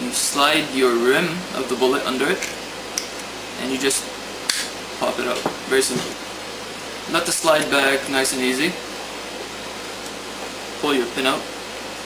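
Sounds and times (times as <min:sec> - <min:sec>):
room noise hiss: 0:00.0 - 0:12.0
man speaking: 0:05.0 - 0:06.2, 0:07.1 - 0:08.8, 0:10.8 - 0:11.5.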